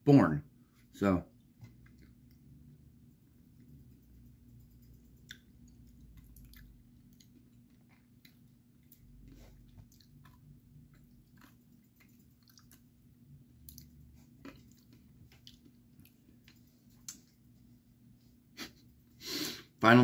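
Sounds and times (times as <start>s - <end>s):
chewing gummy candy: 1.3s - 2.7s, 4.8s - 17.4s
wet mouth clicks: 4.7s - 7.4s.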